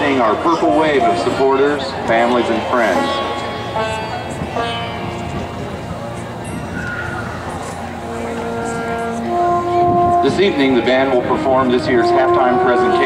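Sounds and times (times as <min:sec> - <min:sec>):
long held musical notes: 0:00.0 - 0:13.0
stadium crowd murmur: 0:00.0 - 0:13.0.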